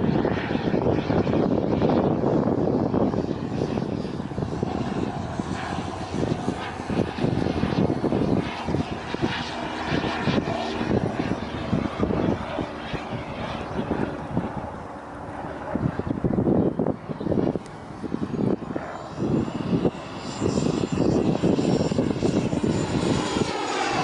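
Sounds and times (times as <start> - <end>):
jet aircraft flying overhead: 0.0 - 24.0.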